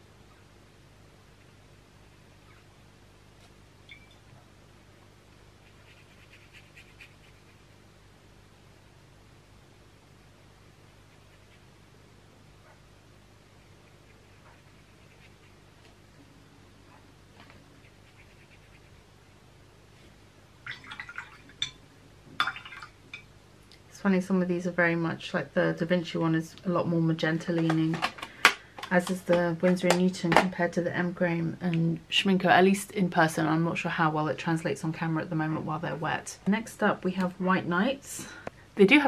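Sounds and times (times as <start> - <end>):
room hum: 0.0 - 39.0
brush strokes on paper: 5.6 - 7.6, 13.6 - 15.6, 17.6 - 19.0.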